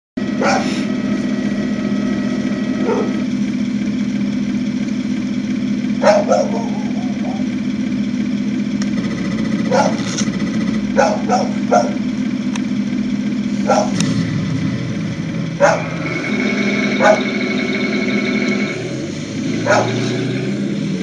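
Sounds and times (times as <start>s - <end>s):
toy tank mechanical drone: 0.2s - 3.5s, 6.0s - 7.6s, 8.8s - 12.6s, 13.5s - 21.0s.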